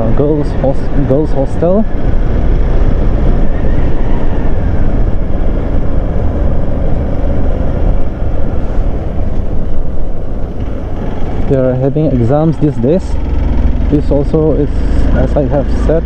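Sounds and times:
motorcycle engine rumble: 0.0s - 16.0s.

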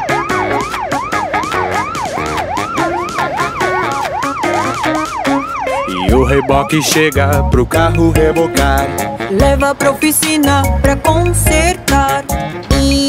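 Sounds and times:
cartoon siren yelping: 0.0s - 7.1s
upbeat instrumental backing track: 0.0s - 13.0s.

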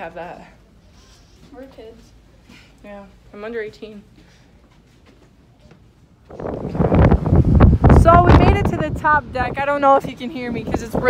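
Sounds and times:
wind buffeting microphone: 6.3s - 11.0s.

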